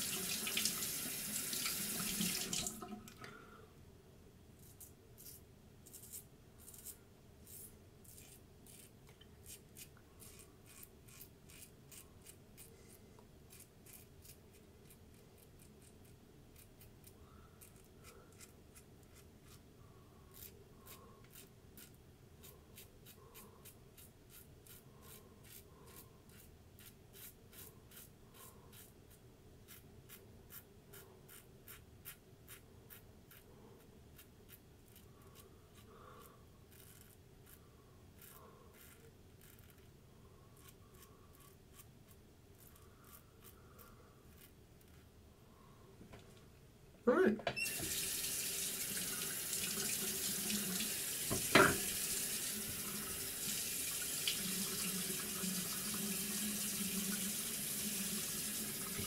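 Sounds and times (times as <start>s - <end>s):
razor scraping stubble: 4.6s - 12.9s, 13.5s - 19.6s.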